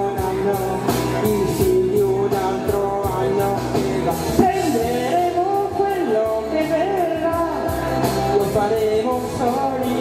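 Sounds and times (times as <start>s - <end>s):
pop-rock backing track: 0.0s - 10.0s.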